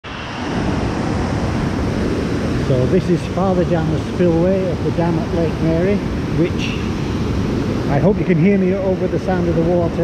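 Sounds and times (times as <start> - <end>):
water rushing over rocks: 0.0 - 10.0.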